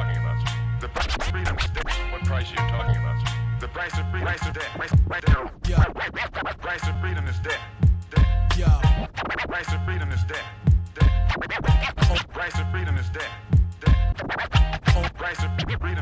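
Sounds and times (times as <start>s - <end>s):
hip hop beat with heavy bass: 0.0s - 16.0s
turntable scratching: 0.8s - 3.0s, 3.7s - 7.0s, 8.2s - 13.2s, 13.8s - 16.0s.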